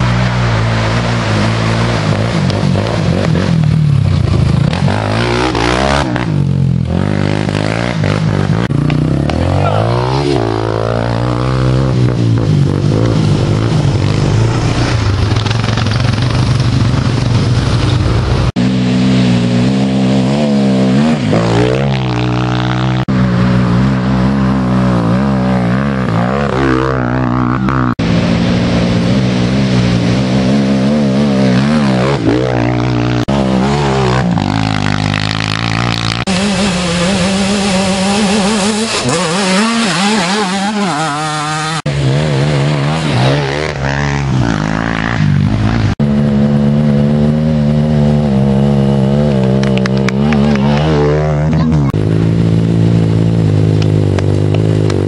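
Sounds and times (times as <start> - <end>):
quad engines revving: 0.0 - 17.2, 18.2 - 55.0.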